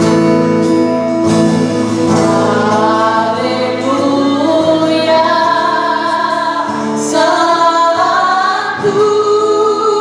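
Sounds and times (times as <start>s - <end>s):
worship band playing: 0.0s - 10.0s
women singing gospel: 1.7s - 10.0s.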